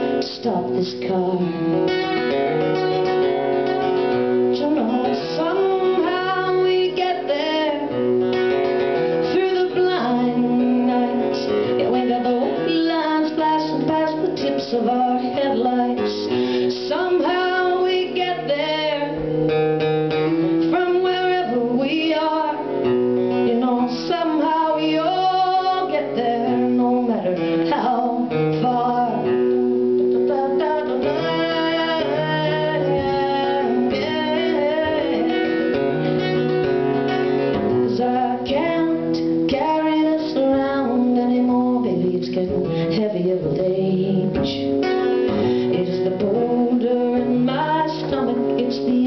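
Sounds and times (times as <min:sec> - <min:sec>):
acoustic guitar strumming: 0:00.0 - 0:49.0
woman singing: 0:00.0 - 0:49.0.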